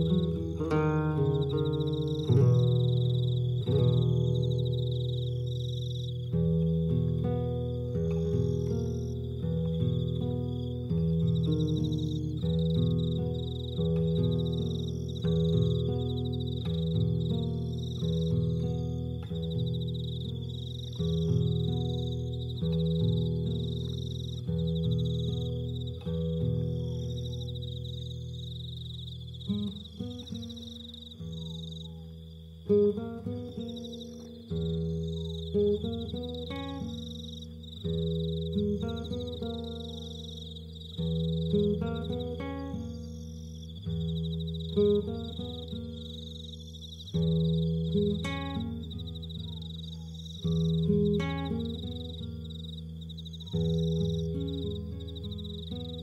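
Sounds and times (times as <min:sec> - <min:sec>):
acoustic guitar chords: 0:00.0 - 0:56.0
crickets trilling: 0:00.0 - 0:56.0.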